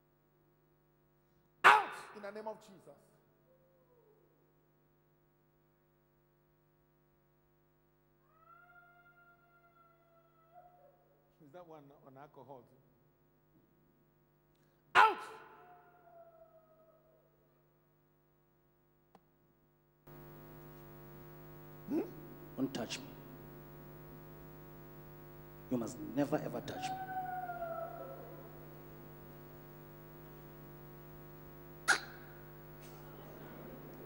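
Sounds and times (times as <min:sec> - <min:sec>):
low mains hum: 0:00.0 - 0:34.0
man shouting through microphone: 0:01.6 - 0:02.3, 0:14.9 - 0:15.6, 0:25.7 - 0:27.2
electrical hum: 0:20.1 - 0:34.0.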